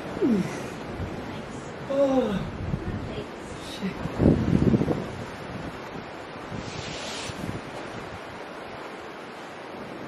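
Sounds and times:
sea surf: 0.0 - 10.0
wind on the microphone: 0.0 - 10.0.

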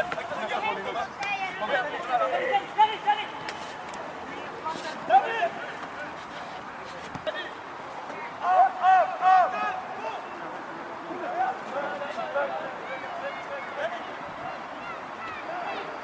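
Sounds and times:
open-air ambience: 0.0 - 16.0
voices shouting: 8.2 - 16.0.

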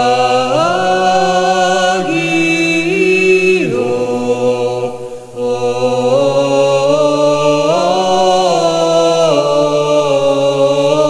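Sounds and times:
vocal chant of long notes: 0.0 - 11.0.

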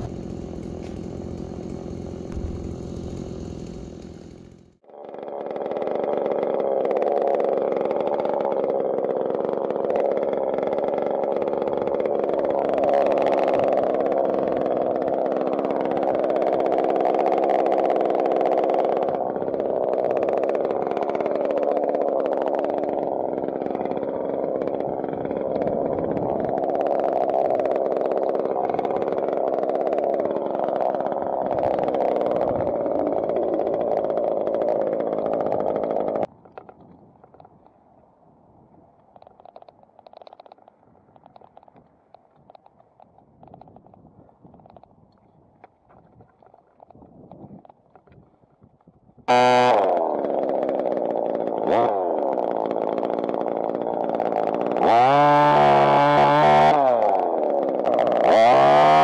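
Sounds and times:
chainsaw engine running: 0.0 - 37.5, 39.2 - 42.8, 49.3 - 59.0.

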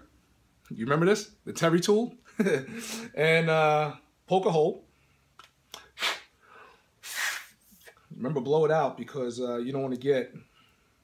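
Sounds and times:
puffs of breath blown: 5.8 - 8.0.

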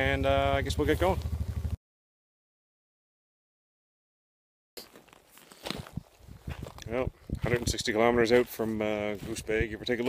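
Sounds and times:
man speaking: 0.0 - 1.2, 6.8 - 10.0.

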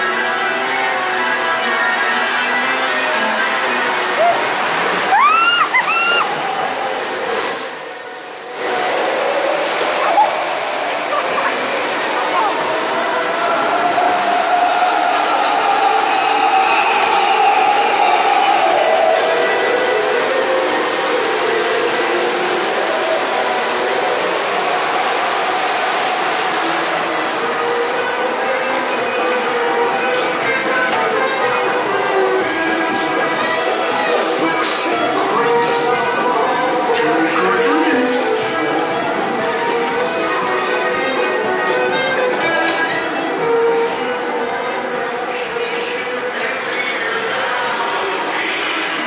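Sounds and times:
water rushing in channel: 0.0 - 49.0
indistinct voices: 2.9 - 49.0
short rising squeals: 12.9 - 21.6.

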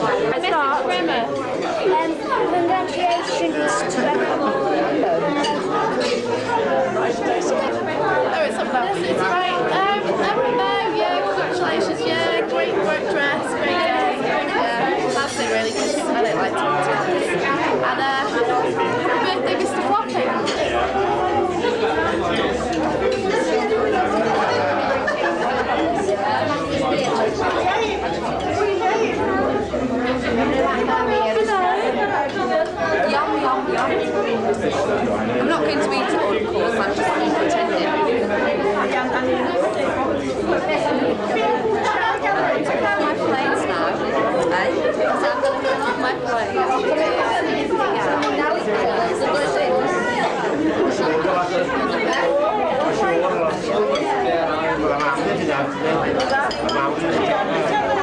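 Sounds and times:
murmur of overlapping voices: 0.0 - 58.0.

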